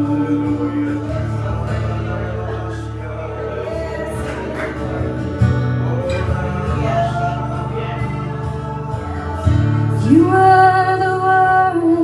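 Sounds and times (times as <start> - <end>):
guitar accompaniment: 0.0 - 12.0
people singing gospel song: 0.0 - 12.0.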